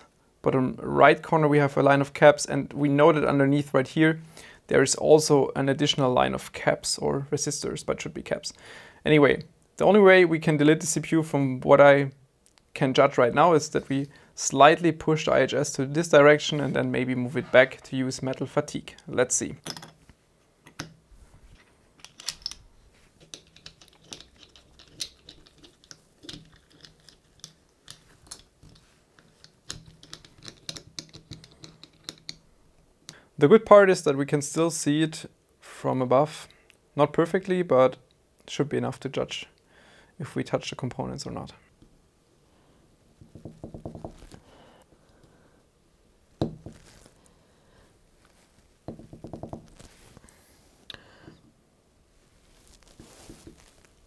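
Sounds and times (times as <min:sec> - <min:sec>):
small metal parts clicking: 0:22.0 - 0:22.6, 0:23.2 - 0:32.4.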